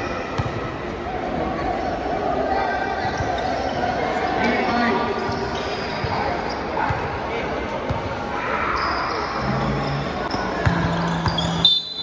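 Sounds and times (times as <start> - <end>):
crowd chatter and shouts: 0.0 - 12.0
basketball bouncing on court: 0.4 - 0.6, 10.2 - 11.6.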